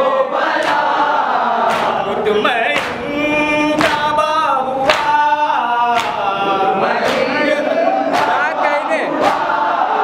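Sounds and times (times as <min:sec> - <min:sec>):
men chanting a lament: 0:00.0 - 0:10.0
rhythmic chest-beating: 0:00.0 - 0:10.0.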